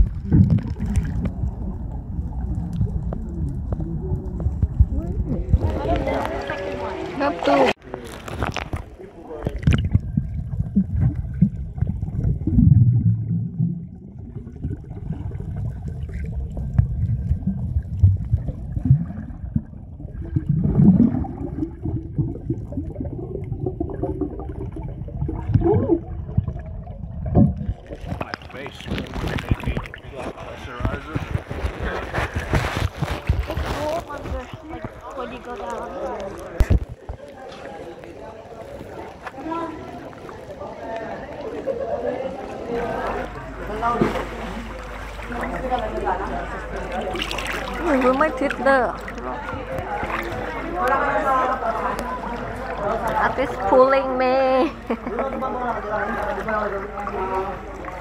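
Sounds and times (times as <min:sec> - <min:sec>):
underwater rumble and gurgling: 0:00.0 - 0:07.4, 0:08.0 - 0:58.0
water splashing at surface: 0:00.0 - 0:41.6, 0:42.9 - 0:54.0.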